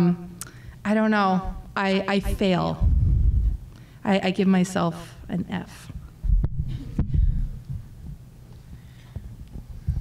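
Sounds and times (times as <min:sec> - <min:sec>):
microphone handling thuds: 0:02.7 - 0:03.6, 0:06.2 - 0:08.3.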